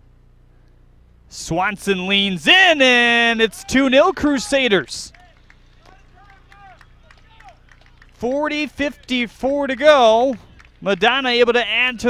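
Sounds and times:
low steady hum: 0:00.0 - 0:12.0
distant players shouting: 0:01.6 - 0:12.0.

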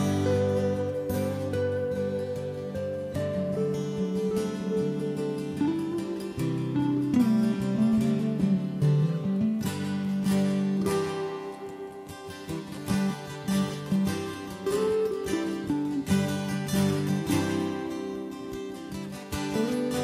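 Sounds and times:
acoustic guitars strumming: 0:00.0 - 0:20.0
picked guitar melody: 0:00.0 - 0:20.0.

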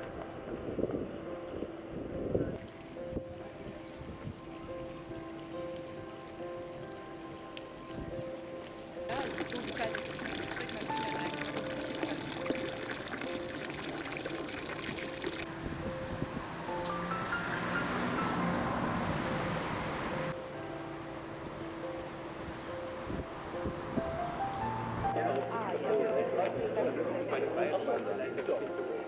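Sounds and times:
soft background music: 0:00.0 - 0:29.0
water pouring and splashing: 0:09.1 - 0:15.5
voices: 0:25.1 - 0:29.0.

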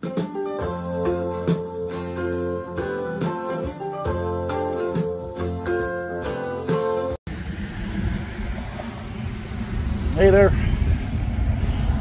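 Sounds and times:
wind buffeting microphone: 0:07.3 - 0:12.0.

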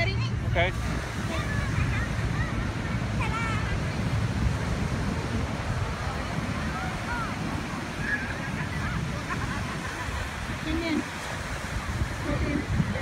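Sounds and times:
breaking surf: 0:00.0 - 0:13.0
wind on microphone: 0:00.0 - 0:13.0
distant voices and calls: 0:05.9 - 0:12.7.

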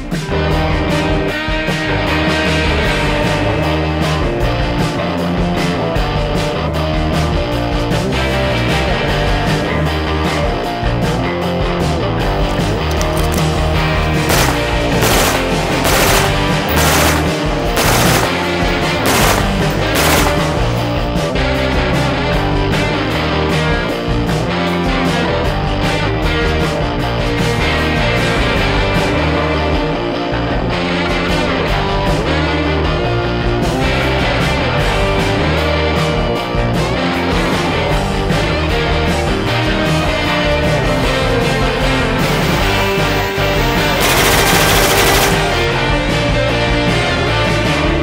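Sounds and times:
rock music with guitar: 0:00.0 - 0:48.0
rifle shots: 0:14.2 - 0:21.1, 0:43.8 - 0:45.9.

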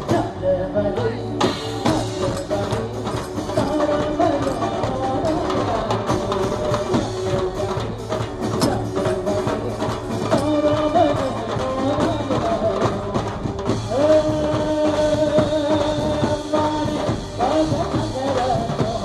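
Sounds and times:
drums keeping a steady beat: 0:00.0 - 0:19.0
live band playing folk dance music: 0:00.0 - 0:19.0.

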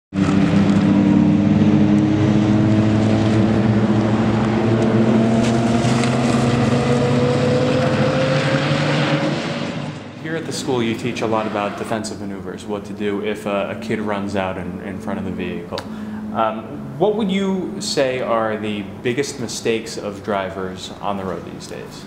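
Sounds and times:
rotary engine car driving: 0:00.1 - 0:20.2.

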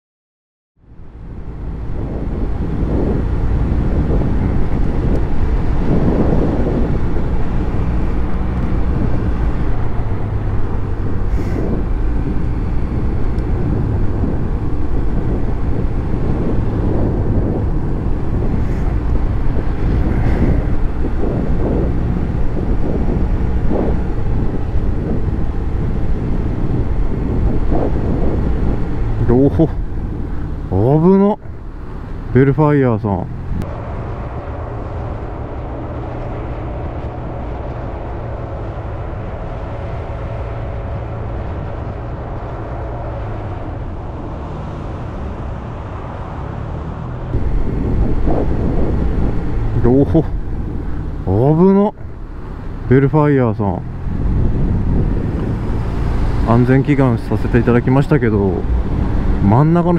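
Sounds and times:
wind and road noise: 0:00.8 - 0:59.9.

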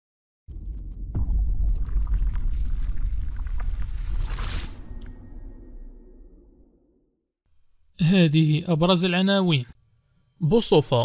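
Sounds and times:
deep low rumble: 0:00.6 - 0:07.1.

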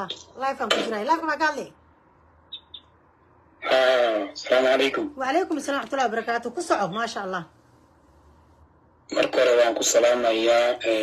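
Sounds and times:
woman speaking: 0:00.0 - 0:01.8, 0:04.9 - 0:07.6
high chirps: 0:02.5 - 0:03.0.

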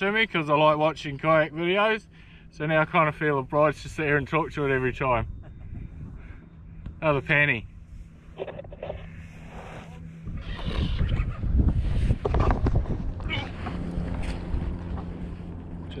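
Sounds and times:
wind buffeting microphone: 0:03.7 - 0:09.5, 0:10.1 - 0:16.0.

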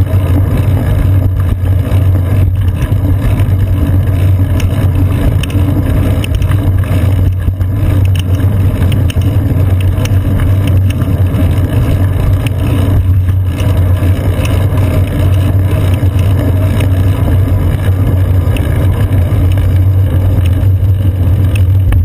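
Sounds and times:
small rattles ticking: 0:00.0 - 0:22.0
street traffic rumble: 0:00.0 - 0:22.0.

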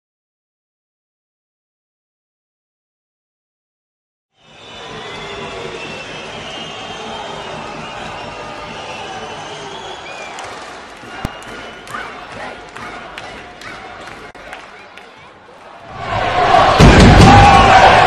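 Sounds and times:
crowd din with voices: 0:04.4 - 0:18.0.

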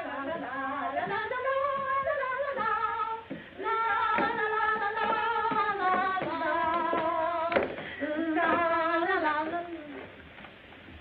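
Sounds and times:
woman singing: 0:00.0 - 0:10.2.

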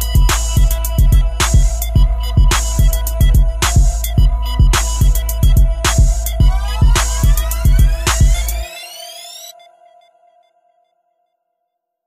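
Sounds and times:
hip hop beat bass and drums: 0:00.0 - 0:09.0
rising synth sweep: 0:00.0 - 0:10.0
held synth tone: 0:00.0 - 0:10.7.

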